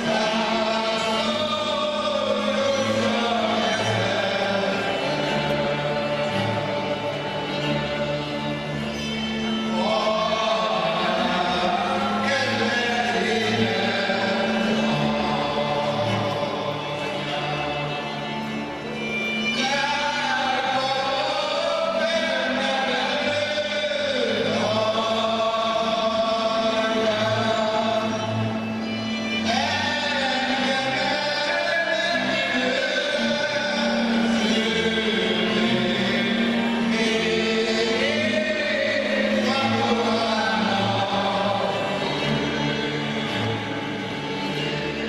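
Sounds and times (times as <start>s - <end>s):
fiddle folk melody: 0.0s - 45.0s
voices singing: 0.0s - 45.0s.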